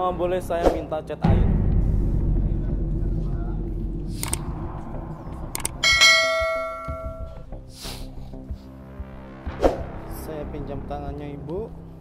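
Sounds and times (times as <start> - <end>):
bell-like metallic ring: 5.8 - 7.4.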